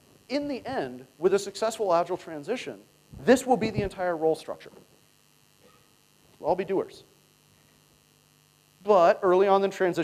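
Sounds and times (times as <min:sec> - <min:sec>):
electrical mains hum: 0:00.0 - 0:10.0
man talking: 0:00.3 - 0:04.8, 0:06.4 - 0:07.1, 0:08.8 - 0:10.0.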